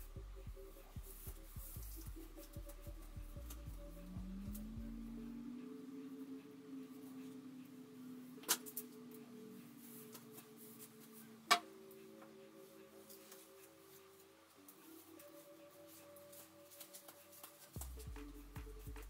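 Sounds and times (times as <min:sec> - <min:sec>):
soft background music: 0:00.0 - 0:19.0.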